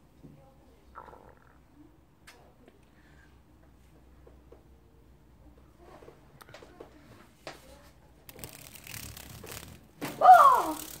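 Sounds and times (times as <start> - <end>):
girl's loud wordless call: 10.2 - 10.8.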